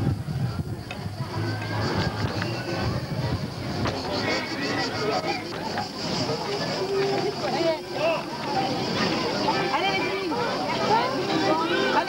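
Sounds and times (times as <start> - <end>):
people's voices: 0.0 - 12.0.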